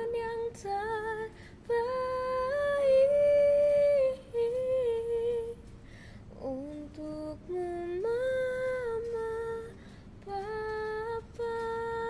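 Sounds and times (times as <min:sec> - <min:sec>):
girl singing unaccompanied: 0:00.0 - 0:05.7, 0:06.3 - 0:12.0.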